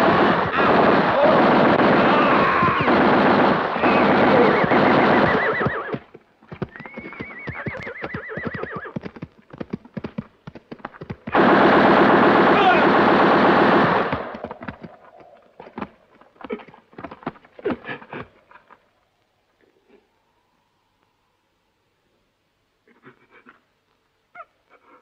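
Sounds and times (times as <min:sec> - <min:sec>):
machine-gun fire: 0:00.0 - 0:05.9, 0:11.3 - 0:14.9
hooves clattering: 0:00.0 - 0:12.5, 0:13.3 - 0:18.9
horse whinnying: 0:00.4 - 0:03.0, 0:03.8 - 0:09.0.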